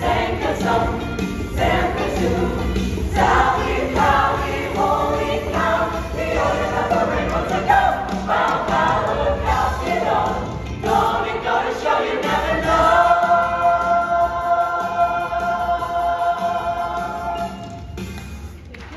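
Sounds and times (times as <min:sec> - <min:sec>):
musical theatre ensemble singing: 0:00.0 - 0:18.2.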